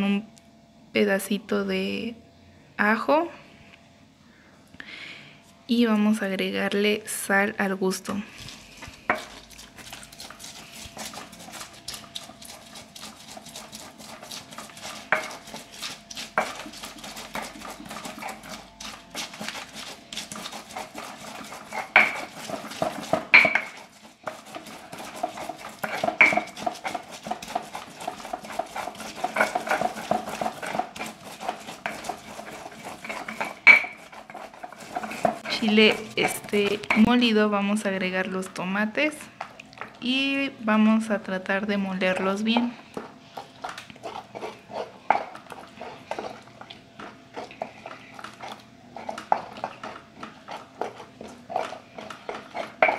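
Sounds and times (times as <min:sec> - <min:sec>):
stone pestle grinding: 0:08.4 - 0:37.3, 0:42.1 - 0:52.9.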